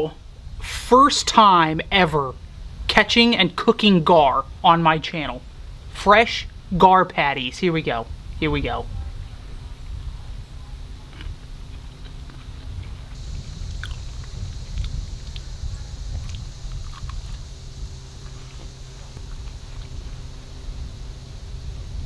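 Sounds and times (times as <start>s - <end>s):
wind rumble on microphone: 0.0s - 3.4s, 7.5s - 22.0s
steady high hiss: 0.0s - 22.0s
person chewing: 11.0s - 20.4s.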